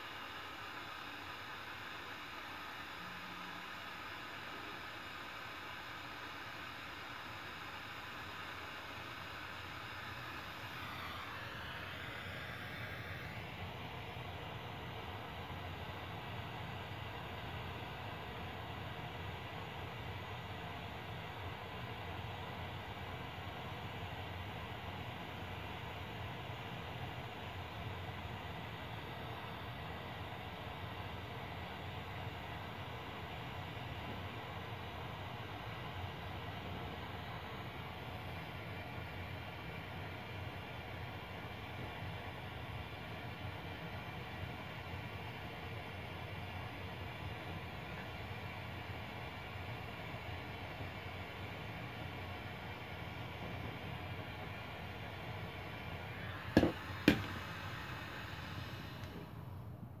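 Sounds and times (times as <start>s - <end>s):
propane torch hissing: 45.8s - 59.4s.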